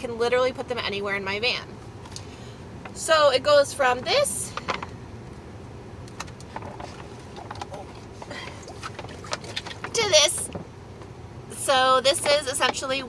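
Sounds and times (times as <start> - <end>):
low steady background noise: 0.0 - 13.0
plastic water bag crinkling: 6.1 - 10.4.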